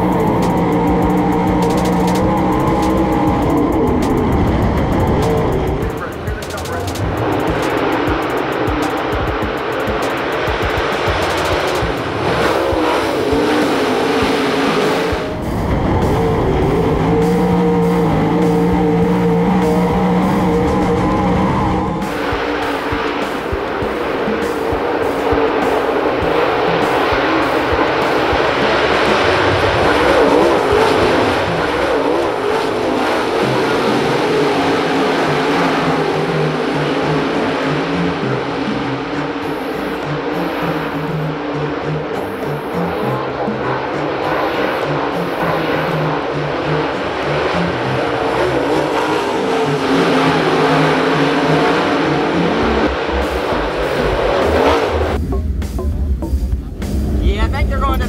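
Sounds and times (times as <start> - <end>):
background music: 0.0 - 58.0
race car engines at speed: 0.0 - 58.0.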